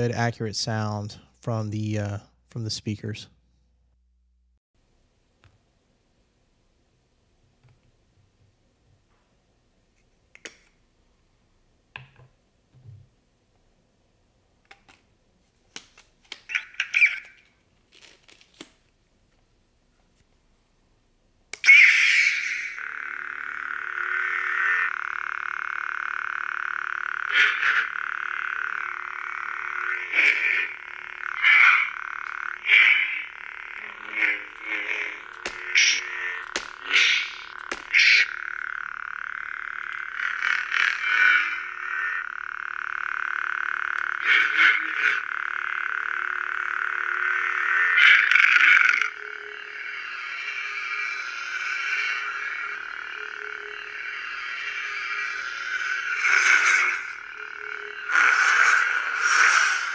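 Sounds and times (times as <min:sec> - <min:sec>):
lightsaber blade hum: 0:21.6 - 0:59.9.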